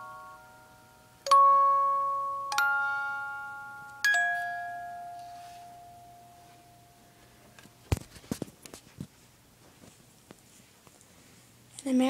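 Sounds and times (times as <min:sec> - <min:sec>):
bell-like chime note: 0:00.0 - 0:07.0.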